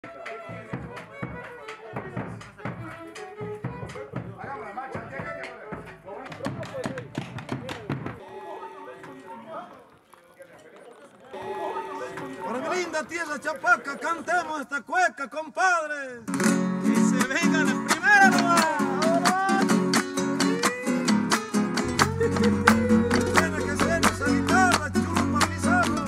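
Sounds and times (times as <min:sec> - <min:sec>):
music with held notes: 0:00.0 - 0:09.3, 0:16.3 - 0:26.0
voices: 0:00.0 - 0:21.2, 0:21.9 - 0:26.0
hand drum beaten with stick: 0:00.5 - 0:08.2.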